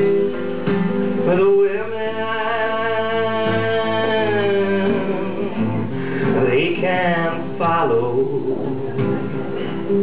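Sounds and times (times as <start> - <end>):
acoustic guitar: 0.0 - 10.0
man singing: 1.1 - 10.0.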